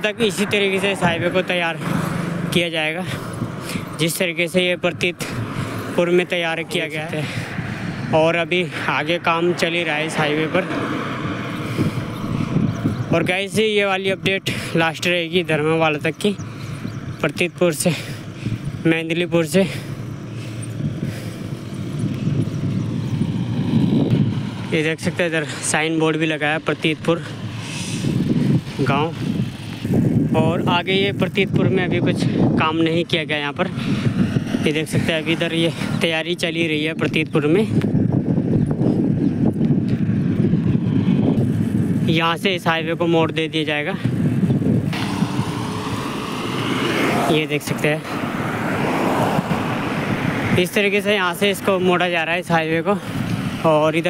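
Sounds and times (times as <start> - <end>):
tyre and road noise: 0.0 - 54.0
vehicle engine: 0.0 - 54.0
wind on microphone: 3.1 - 4.0, 6.6 - 13.5, 16.4 - 17.5, 20.1 - 25.6, 26.6 - 50.8.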